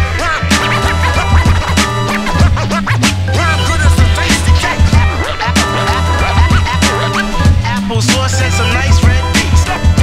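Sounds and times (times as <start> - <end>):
hip-hop beat: 0.0 - 10.0
turntable scratching: 0.0 - 10.0.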